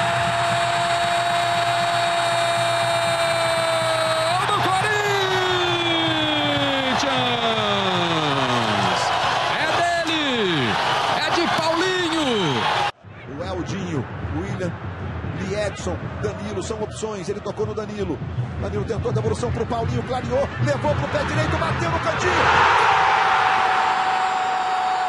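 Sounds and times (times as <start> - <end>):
stadium crowd cheering: 0.0 - 13.8, 18.9 - 25.0.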